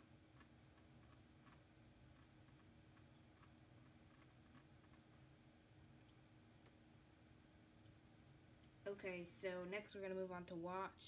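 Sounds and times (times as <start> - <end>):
low room hum: 0.0 - 11.0
faint computer mouse clicks: 6.0 - 6.2.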